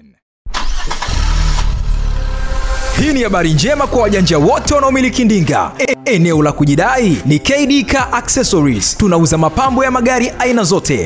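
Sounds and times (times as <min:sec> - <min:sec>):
car engine starting and running: 0:00.5 - 0:05.8.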